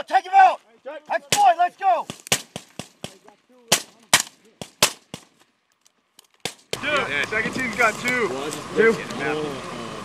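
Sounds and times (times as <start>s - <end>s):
rifle shots: 1.3s - 5.4s.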